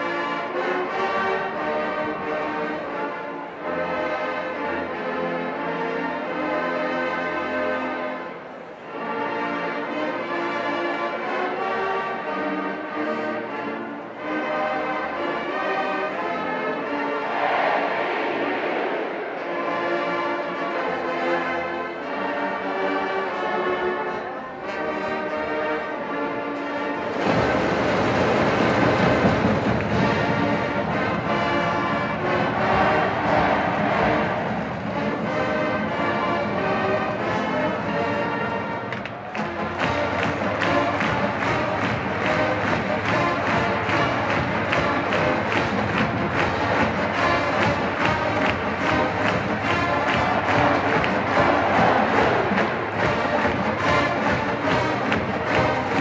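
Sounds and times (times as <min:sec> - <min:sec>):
marching band brass: 0:00.0 - 0:56.0.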